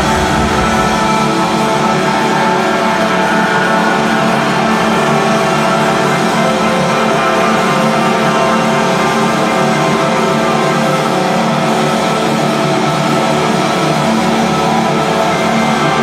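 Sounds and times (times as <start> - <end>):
distorted electric guitars droning: 0.0 - 16.0.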